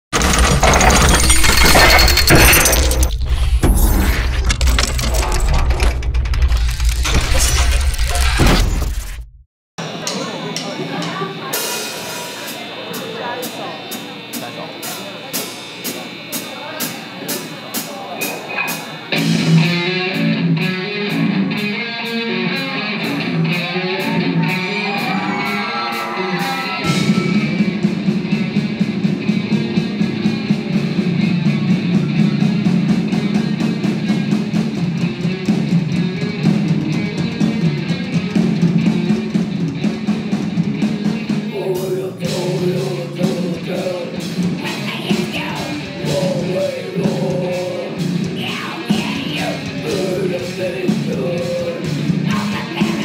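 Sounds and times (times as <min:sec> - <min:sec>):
rock band playing: 0:09.8 - 0:53.0.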